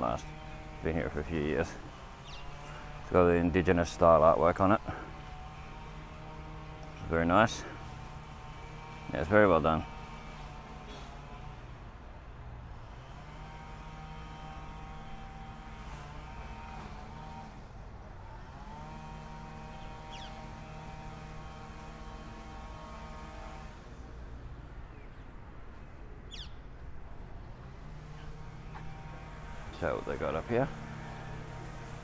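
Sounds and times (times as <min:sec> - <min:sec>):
vehicle engine running: 0:00.0 - 0:32.0.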